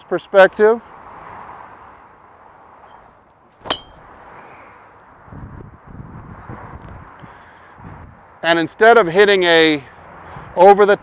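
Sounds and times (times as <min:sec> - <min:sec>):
golf driver striking ball: 0:03.6 - 0:04.0.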